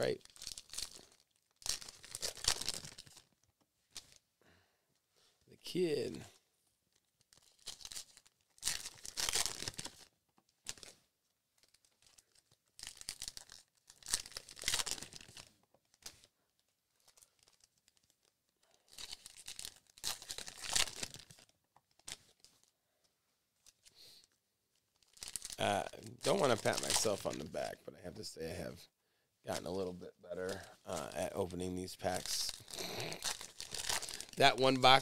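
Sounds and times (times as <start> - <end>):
card pack wrappers tearing: 0.0 - 3.3, 7.4 - 10.9, 11.6 - 16.2, 18.9 - 22.4, 25.0 - 27.4, 30.4 - 35.0.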